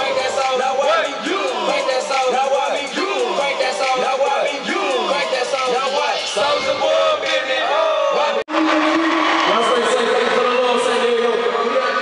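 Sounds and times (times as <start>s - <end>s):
crowd chanting: 0.0s - 9.9s
amplified voices: 0.0s - 12.0s.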